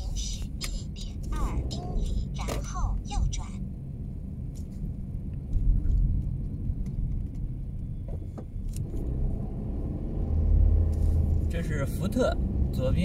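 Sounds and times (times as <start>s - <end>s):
car engine and tyres rumbling: 0.0s - 13.0s.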